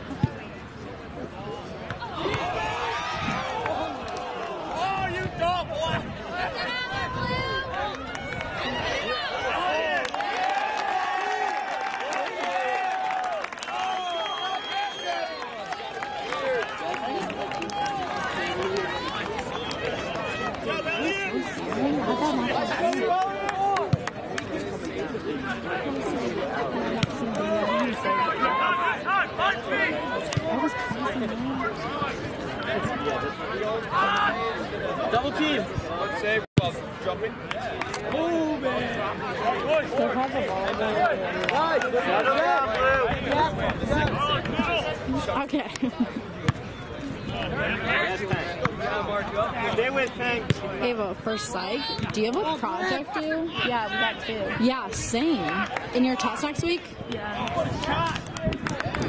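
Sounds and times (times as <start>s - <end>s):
spectators chattering: 0.0s - 59.0s.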